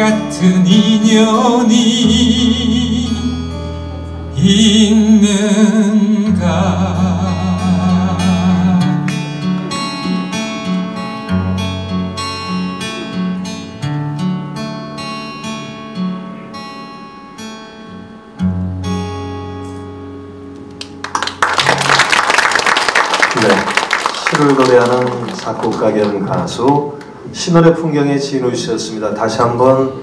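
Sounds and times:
acoustic guitar ballad: 0.0 - 22.0
audience applause: 20.8 - 26.9.

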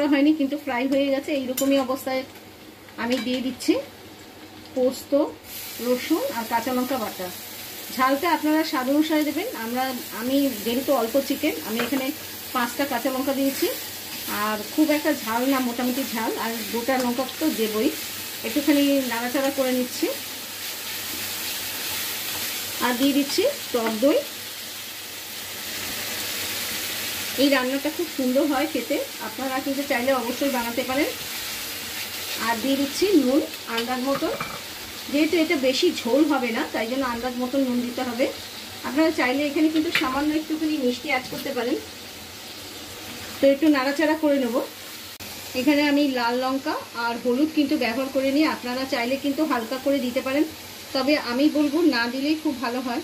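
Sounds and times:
oil and onions sizzling in a wok: 0.0 - 53.0.

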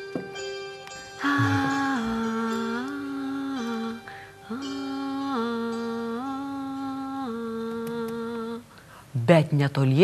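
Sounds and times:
person humming a melody: 1.2 - 8.7.

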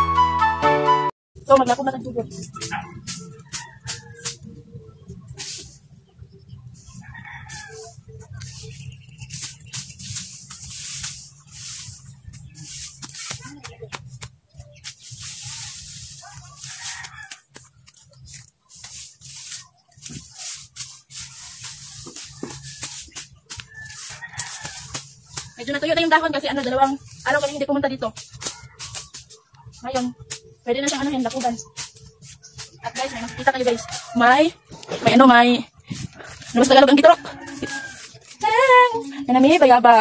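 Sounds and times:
dry grass rustling and cut by hand: 1.5 - 40.0
rooster crowing: 7.0 - 8.0, 16.2 - 17.5, 23.6 - 24.9, 36.2 - 38.4.

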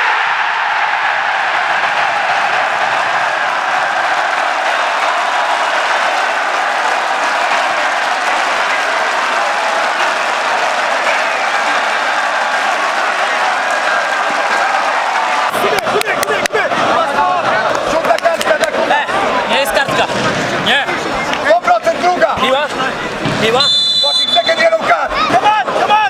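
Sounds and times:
crowd clapping: 0.0 - 20.0
crowd cheering: 0.0 - 26.0.

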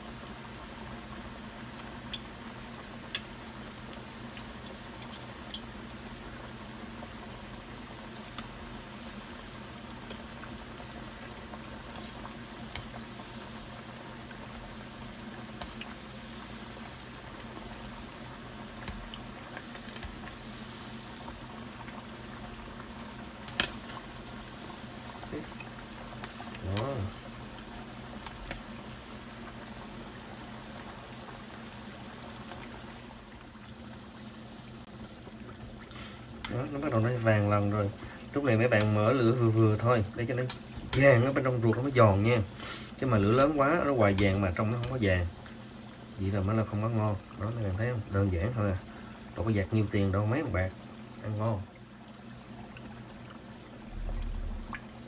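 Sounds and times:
oil bubbling and sizzling: 0.0 - 55.0.

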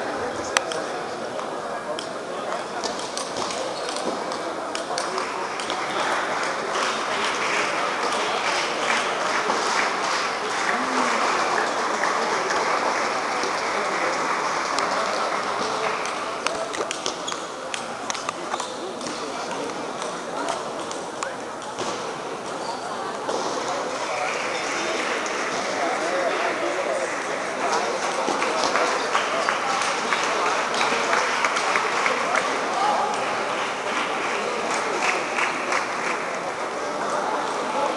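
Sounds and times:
crowd murmur and chatter: 0.0 - 37.9.

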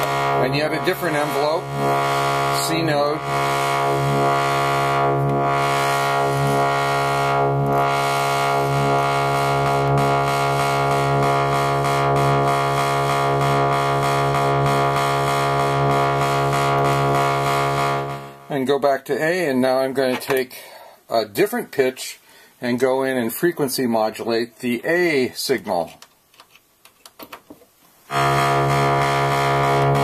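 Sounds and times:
bright low synthesizer drone: 0.0 - 18.6, 28.1 - 30.0.

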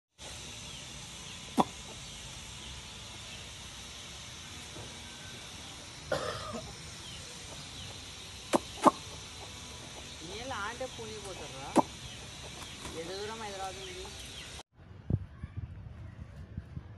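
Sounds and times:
steady hiss: 0.2 - 14.6.

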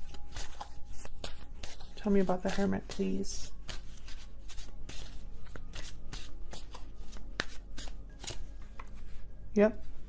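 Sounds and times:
cards being shuffled: 0.0 - 9.2.

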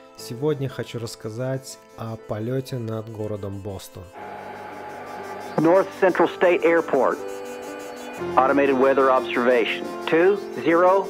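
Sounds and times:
person speaking: 5.4 - 11.0.

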